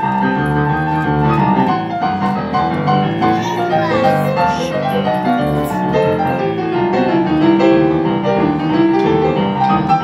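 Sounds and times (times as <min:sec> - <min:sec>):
boogie-woogie piano: 0:00.0 - 0:10.0.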